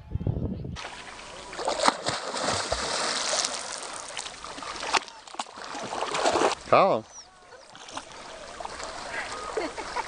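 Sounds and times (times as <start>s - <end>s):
person diving into water: 0.8s - 6.6s
water splashing: 0.8s - 10.0s.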